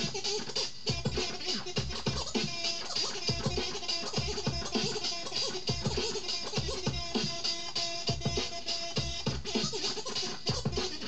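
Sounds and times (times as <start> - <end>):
steady drum beat: 0.0 - 11.0
vinyl record scratching: 0.0 - 11.0.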